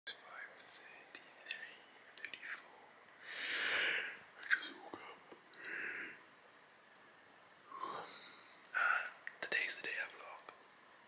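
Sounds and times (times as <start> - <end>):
man whispering: 0.1 - 3.0, 4.4 - 5.3, 7.7 - 10.6.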